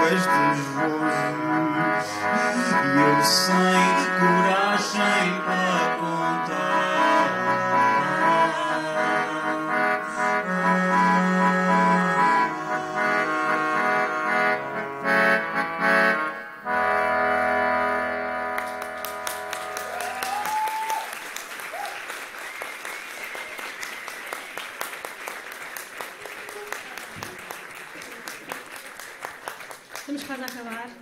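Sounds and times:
live band holding chords: 0:00.0 - 0:20.4
audience applause: 0:18.6 - 0:31.0
crowd whooping: 0:19.6 - 0:24.8.

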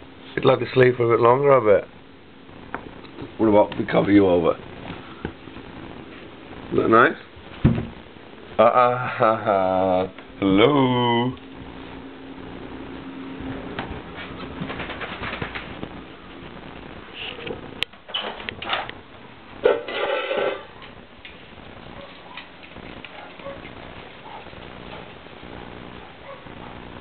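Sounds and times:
shuffling movement: 0:13.5 - 0:17.6.

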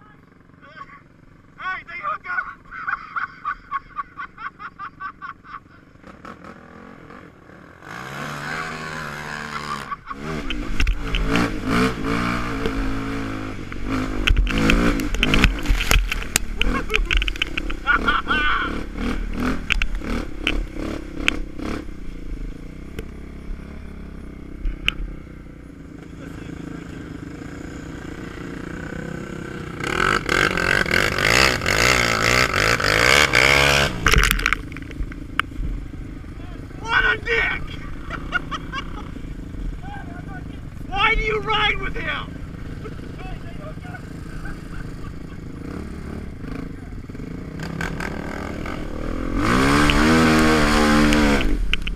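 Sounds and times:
quad bike engines revving: 0:00.0 - 0:51.9.

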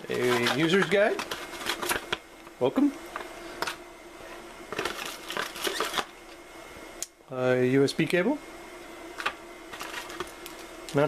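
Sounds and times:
paper and cardboard rustling: 0:00.0 - 0:02.2, 0:04.7 - 0:06.1, 0:09.7 - 0:10.4.

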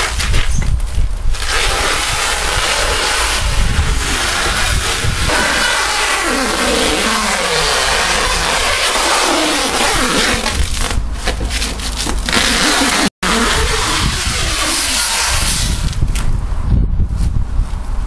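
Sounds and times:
plastic stretch film rasping: 0:00.0 - 0:16.3.

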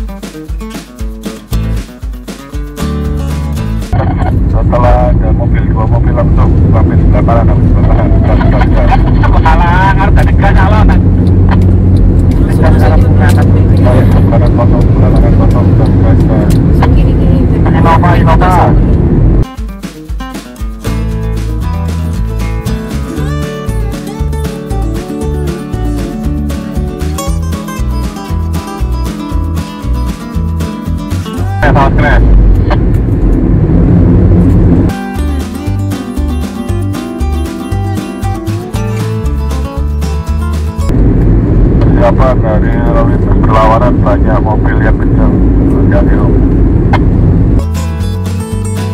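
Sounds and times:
acoustic guitar music: 0:00.0 - 0:42.0, 0:46.5 - 0:48.9
road and engine rumble in car: 0:03.8 - 0:19.4, 0:21.9 - 0:34.9, 0:37.8 - 0:48.9
voices: 0:04.0 - 0:11.0, 0:12.3 - 0:18.8, 0:31.3 - 0:32.3, 0:41.8 - 0:46.4.

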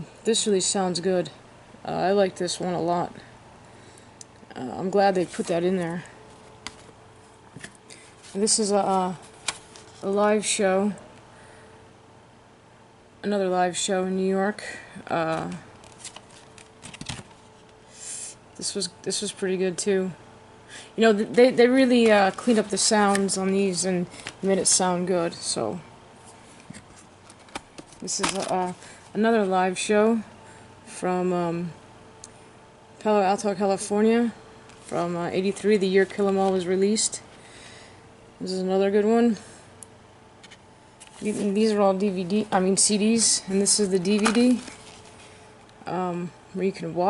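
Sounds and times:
cardboard rustling: 0:15.3 - 0:17.6, 0:21.8 - 0:24.8, 0:26.7 - 0:28.8, 0:43.6 - 0:45.3.

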